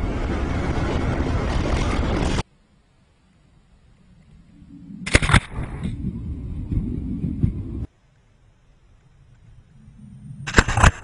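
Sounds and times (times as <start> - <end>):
wind and snow rumbling: 0.0 - 11.0.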